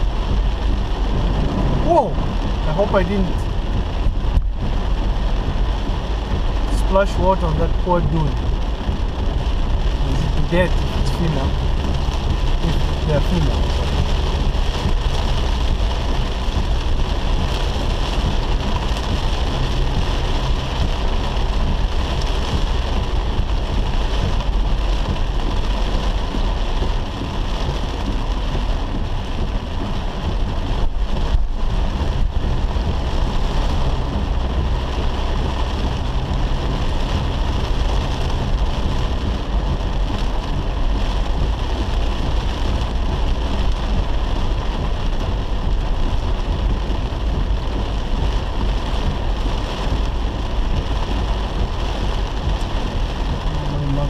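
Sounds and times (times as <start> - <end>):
engine and tyres on wet road: 0.0 - 54.0
heavy rain on car roof: 0.0 - 54.0.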